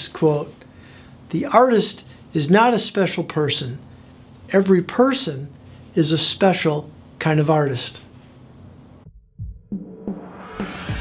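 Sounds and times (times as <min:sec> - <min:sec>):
outro music with low beats: 0:09.0 - 0:11.0.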